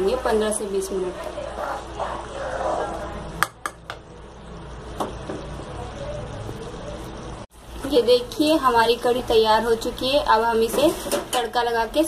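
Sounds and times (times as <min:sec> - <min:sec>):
steady low hiss of cooking: 0:00.0 - 0:12.0.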